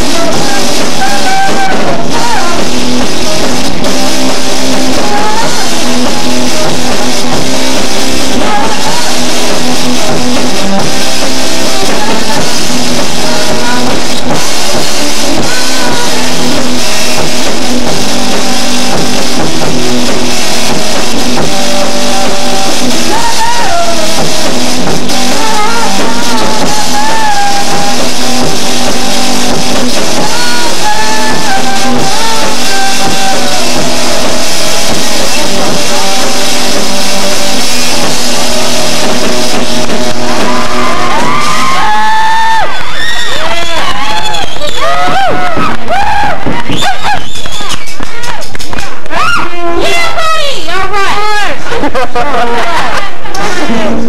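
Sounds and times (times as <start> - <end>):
drum kit: 0.0 - 50.2
electric guitar: 0.0 - 54.0.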